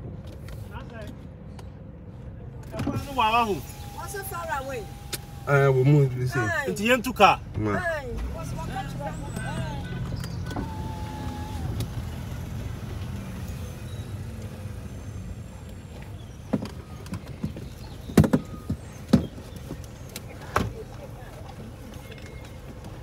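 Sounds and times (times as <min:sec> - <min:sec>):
car cabin hum: 0:02.8 - 0:23.0
faint voices: 0:15.0 - 0:23.0.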